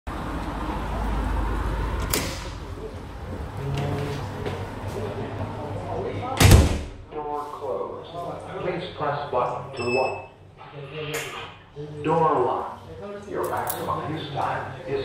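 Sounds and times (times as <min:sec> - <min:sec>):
metal door shutting thud: 0:06.4 - 0:07.0.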